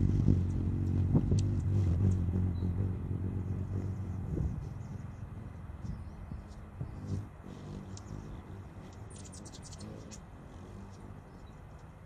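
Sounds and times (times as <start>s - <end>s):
hummingbird wings buzzing: 0.0s - 12.0s
faint high ticks: 8.9s - 12.0s.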